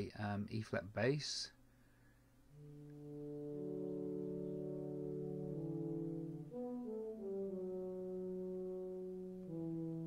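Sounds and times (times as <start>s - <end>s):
sampled brass chords: 2.5s - 10.0s.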